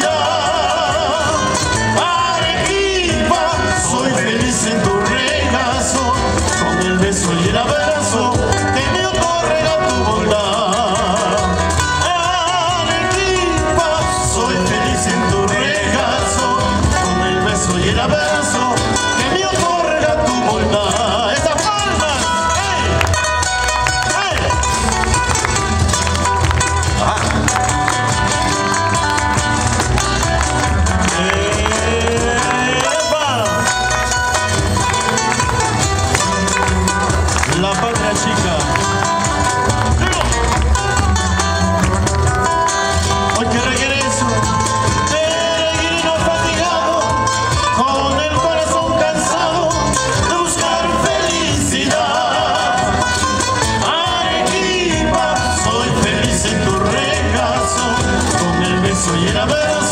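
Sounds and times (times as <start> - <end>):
live band music: 0.0 - 59.9
steady bass line: 0.0 - 59.9
wavering lead melody: 21.8 - 59.3.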